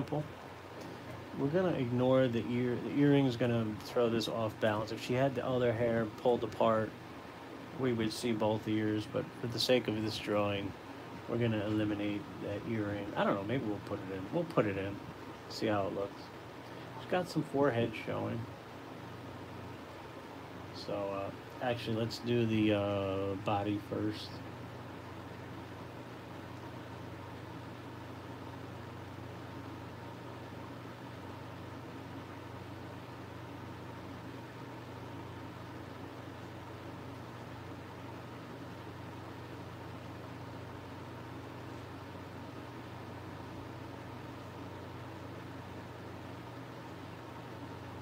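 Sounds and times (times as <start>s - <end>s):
electric fan whoosh and hum: 0.0s - 48.0s.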